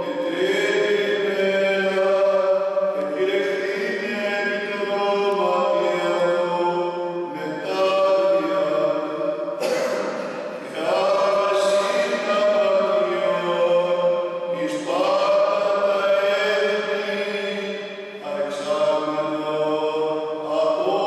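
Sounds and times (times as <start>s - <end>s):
priest chanting solo: 0.0s - 21.0s.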